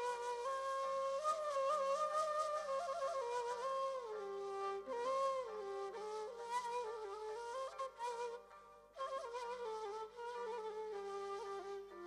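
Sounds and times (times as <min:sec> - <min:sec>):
reed flute melody: 0:00.0 - 0:12.0.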